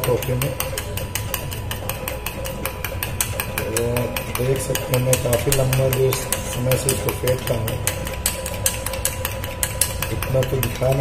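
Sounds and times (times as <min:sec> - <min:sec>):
spoon beating in steel bowl: 0:00.0 - 0:11.0.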